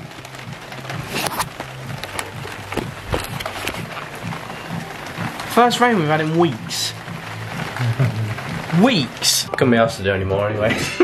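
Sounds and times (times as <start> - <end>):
heavy rain hissing: 0.0 - 11.0
music with steady beat: 0.0 - 11.0.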